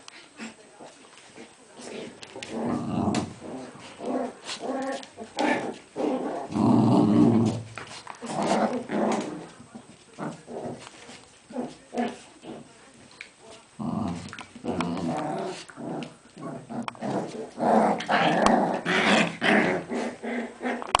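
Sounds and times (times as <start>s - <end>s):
dogs growling in play: 0.4s - 12.7s, 13.7s - 21.0s.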